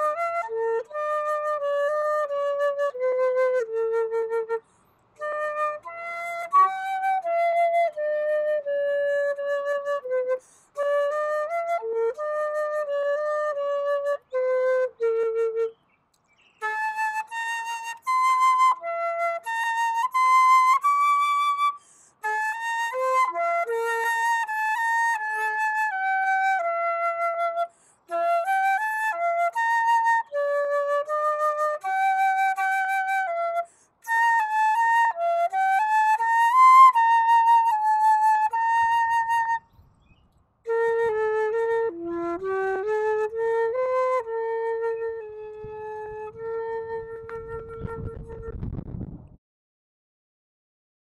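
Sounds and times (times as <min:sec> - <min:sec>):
solo flute melody: 0:00.0 - 0:39.9, 0:40.7 - 0:48.7.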